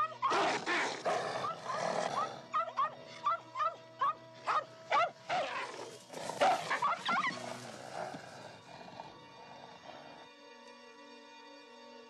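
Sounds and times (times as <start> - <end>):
soft film music: 0.0 - 12.0.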